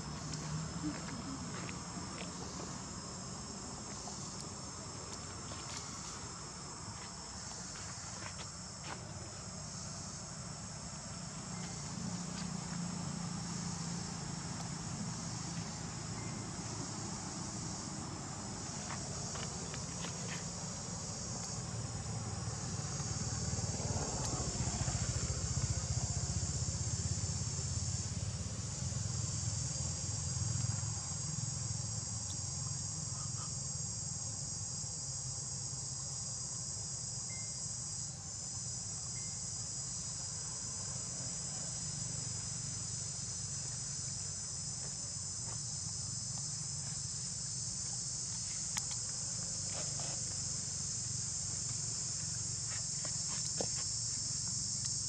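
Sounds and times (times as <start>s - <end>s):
high-pitched insect chorus: 0.0s - 55.0s.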